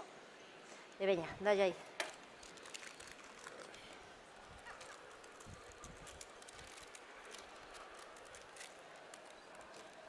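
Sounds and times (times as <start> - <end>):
small irregular clicks: 1.9 - 4.0, 4.6 - 10.0
baking paper crinkling: 2.2 - 10.0.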